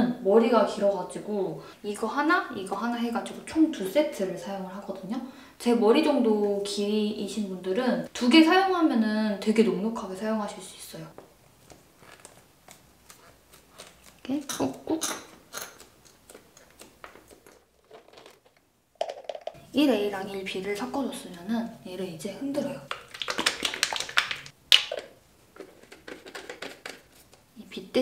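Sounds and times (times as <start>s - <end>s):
bottle handling: 17.0s - 19.6s
liquid sloshing in shaken bottle: 22.9s - 27.3s
plastic tube crinkles and clicks: 22.9s - 27.4s.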